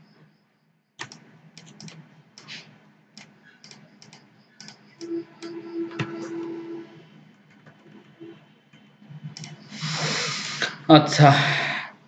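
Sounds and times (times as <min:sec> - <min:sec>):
faint low hum: 0:00.0 - 0:12.0
mouse and keyboard clicks: 0:01.0 - 0:02.6, 0:03.2 - 0:04.8, 0:09.3 - 0:09.6.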